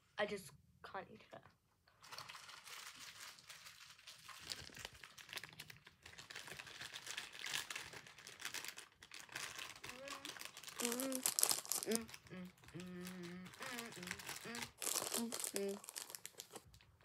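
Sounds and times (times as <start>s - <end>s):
wrapper crinkling: 2.0s - 17.0s.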